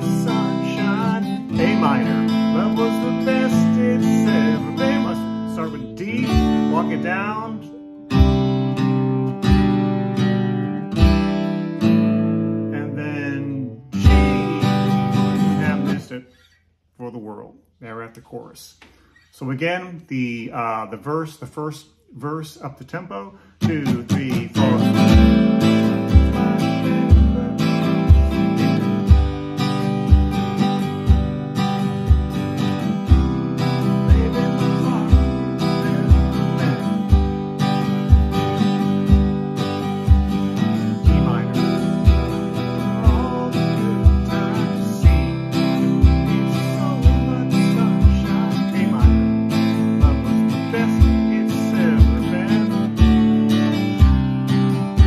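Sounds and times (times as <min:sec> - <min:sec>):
acoustic guitar strumming: 0:00.0 - 0:17.4, 0:22.7 - 0:55.0.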